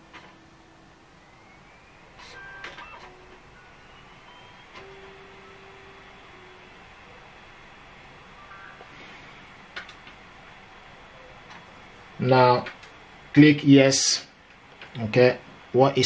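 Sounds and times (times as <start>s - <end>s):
disc drive whine: 0.0s - 16.0s
disc drive clicks: 2.2s - 6.7s, 9.6s - 10.2s, 11.2s - 11.8s.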